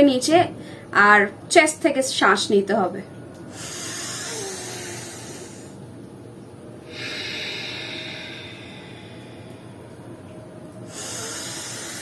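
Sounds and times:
woman breathing deeply: 3.5s - 5.8s, 6.8s - 10.0s, 10.9s - 12.0s.

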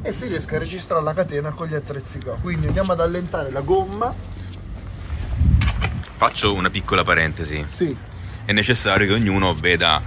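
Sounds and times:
handling rustling rumble: 0.0s - 10.0s.

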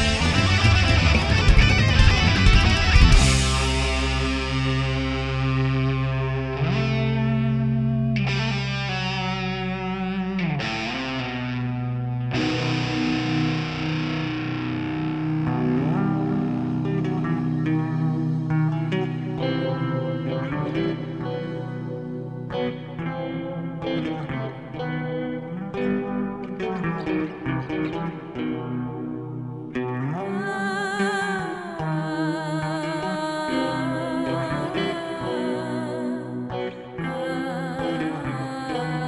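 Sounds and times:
bass notes: 0.0s - 23.0s
distorted electric guitar: 0.0s - 39.0s.

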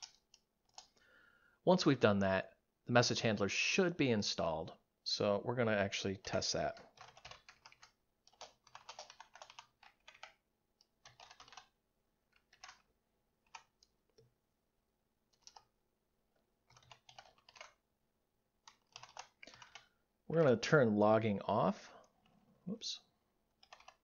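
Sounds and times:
typing on computer keyboard: 0.0s - 1.0s, 6.7s - 14.3s, 15.3s - 15.7s, 16.6s - 17.8s, 18.6s - 19.9s, 23.5s - 24.0s.

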